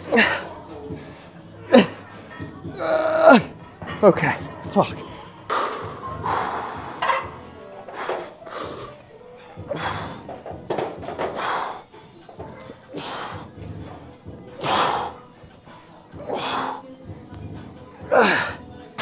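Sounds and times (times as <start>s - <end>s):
faint background music: 0.0s - 19.0s.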